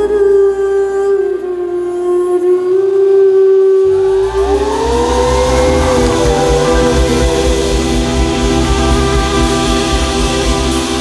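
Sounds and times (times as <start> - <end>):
bass: 0.0 - 2.8, 3.9 - 11.0
woman singing a long note: 0.0 - 10.3
drums: 3.9 - 11.0.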